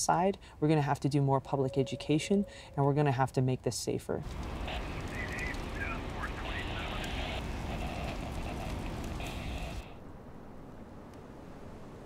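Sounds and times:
even hiss: 0:04.3 - 0:10.0.

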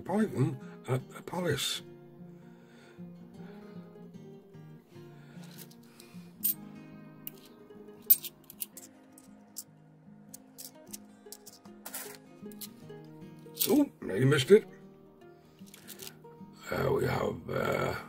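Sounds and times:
soft background music: 0:00.0 - 0:18.0
coins clicking together: 0:05.4 - 0:06.6, 0:07.3 - 0:09.7, 0:10.3 - 0:12.8, 0:13.6 - 0:13.8, 0:15.7 - 0:16.1.

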